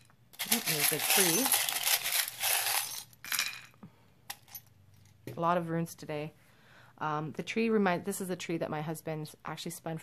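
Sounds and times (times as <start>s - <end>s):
stones clattering into wooden bowl: 0.4s - 3.6s.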